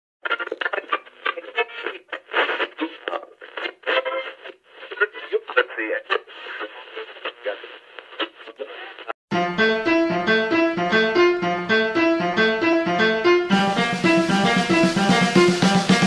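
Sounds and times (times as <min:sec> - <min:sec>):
radio-filtered speech: 0:00.2 - 0:09.2.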